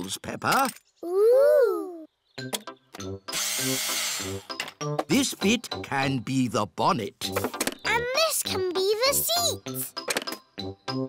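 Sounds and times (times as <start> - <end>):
light bouncy background music: 2.2 - 11.0
loud whirring drill: 3.3 - 4.5.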